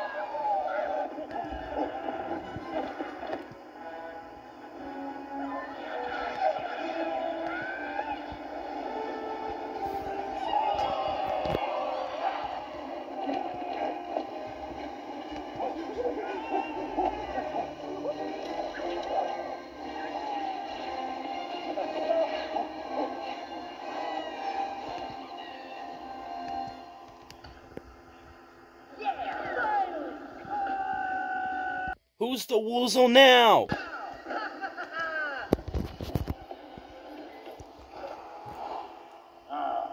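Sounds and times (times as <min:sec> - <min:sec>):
tinny film music: 0:00.1 - 0:29.3
character voices: 0:32.2 - 0:33.7.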